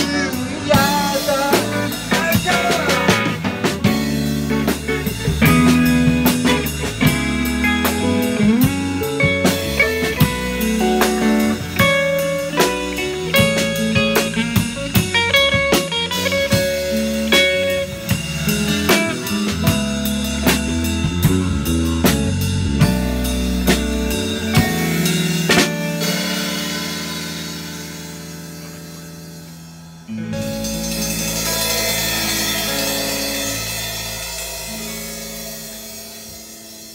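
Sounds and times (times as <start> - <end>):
drum kit: 0.0 - 36.9
electric guitar chords: 0.0 - 36.9.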